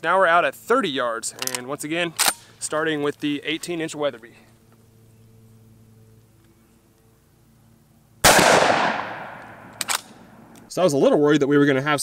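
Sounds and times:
shotgun blast: 8.2s - 10.5s.

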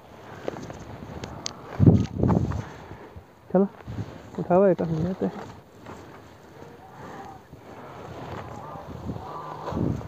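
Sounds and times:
light crackles: 0.0s - 10.0s.

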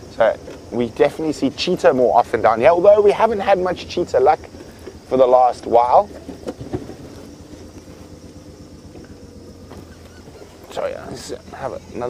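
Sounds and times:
vehicle engine running: 0.0s - 12.0s
vehicle body knocks and rattles: 4.4s - 10.8s.

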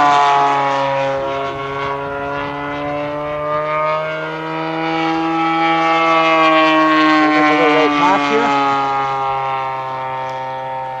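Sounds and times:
model airplane engine drone: 0.0s - 11.0s.

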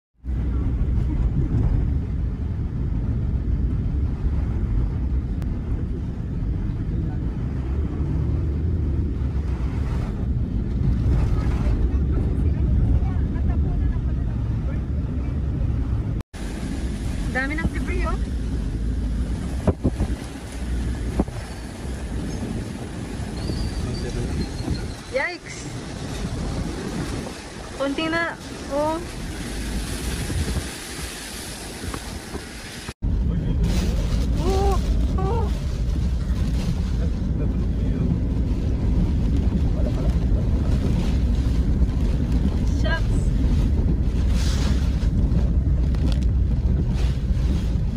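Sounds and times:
light rumble: 0.2s - 47.9s
strong wind buffeting microphone: 0.2s - 47.9s.

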